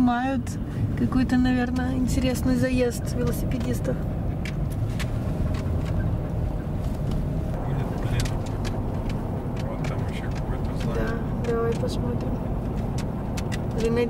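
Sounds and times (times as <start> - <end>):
car engine and tyres rumbling: 0.0 - 14.0
person speaking: 9.5 - 12.3.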